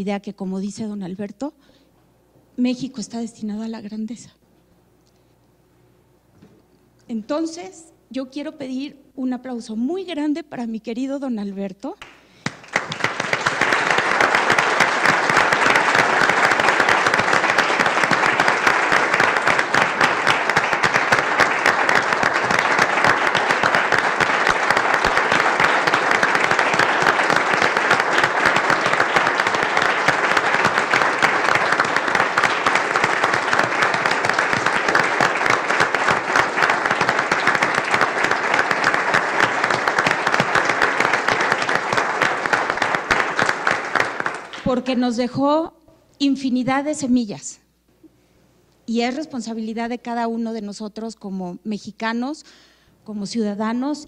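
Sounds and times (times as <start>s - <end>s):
audience applauding: 12.0s - 44.7s.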